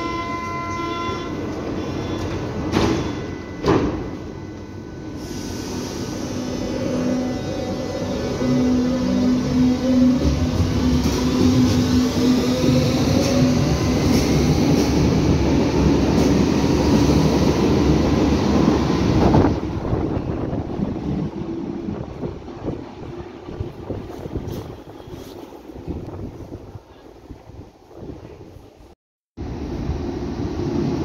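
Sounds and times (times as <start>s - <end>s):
wheels rumbling on rail: 0.0s - 31.0s.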